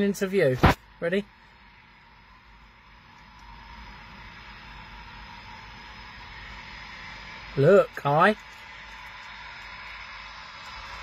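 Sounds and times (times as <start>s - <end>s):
jet engines with high whine: 0.0s - 11.0s.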